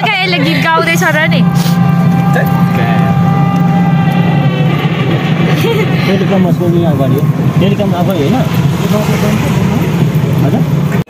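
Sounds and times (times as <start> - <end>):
faint voices: 0.0 - 11.0
low road and vehicle rumble: 0.0 - 11.0.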